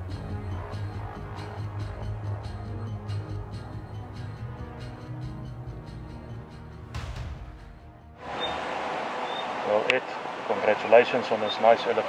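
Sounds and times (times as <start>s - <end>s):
music: 0.0s - 8.2s
outdoor background hiss: 8.2s - 12.0s
man speaking: 9.6s - 12.0s.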